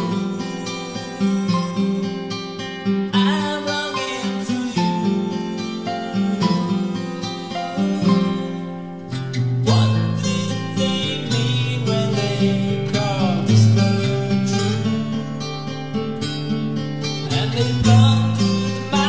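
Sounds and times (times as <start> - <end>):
person singing: 0.0 - 15.9, 17.0 - 19.0
acoustic guitar: 0.0 - 19.0.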